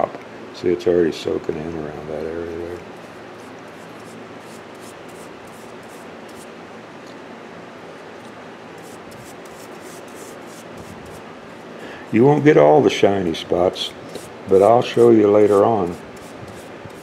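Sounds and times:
paintbrush rubbing strokes on wood: 3.0s - 6.5s, 8.8s - 11.2s, 13.8s - 17.0s.

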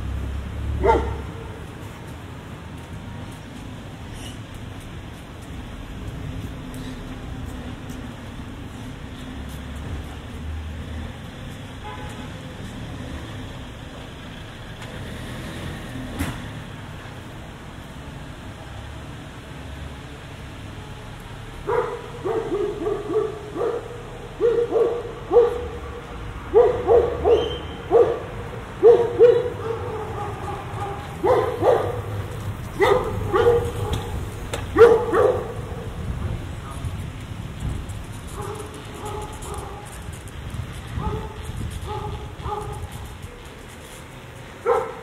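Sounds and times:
low street ambience: 0.0s - 45.0s
dog barking: 0.8s - 1.6s, 21.6s - 25.8s, 26.5s - 32.1s, 32.8s - 35.9s, 38.4s - 39.9s, 41.0s - 42.8s, 44.6s - 45.0s.

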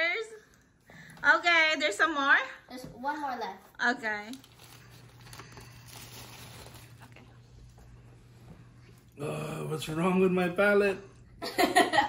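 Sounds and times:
paper wrapper crinkling: 4.0s - 7.4s.

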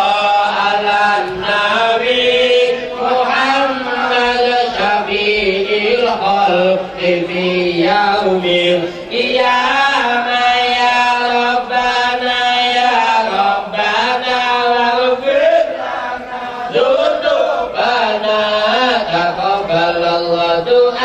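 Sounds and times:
melodic religious chanting: 0.0s - 21.0s.

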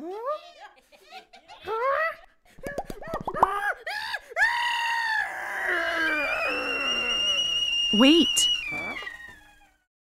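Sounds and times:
cartoon character screaming: 4.4s - 9.4s
steady high whistle: 6.3s - 9.1s.

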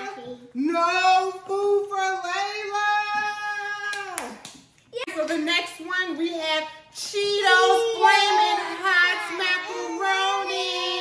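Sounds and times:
child singing: 7.4s - 11.0s.

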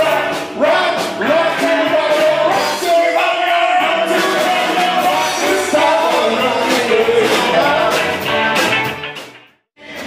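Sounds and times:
person singing: 0.0s - 8.9s
drum kit: 0.0s - 10.0s
electric guitars: 0.0s - 10.0s.

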